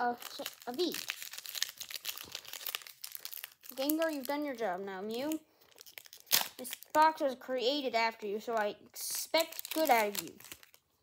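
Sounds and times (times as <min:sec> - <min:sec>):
foil wrapper crinkling: 0:00.0 - 0:07.2, 0:08.4 - 0:11.0.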